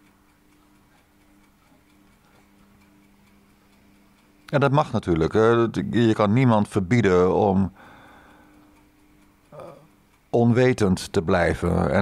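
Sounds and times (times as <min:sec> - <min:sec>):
faint regular ticking: 0:00.0 - 0:12.0
low steady hum: 0:00.0 - 0:12.0.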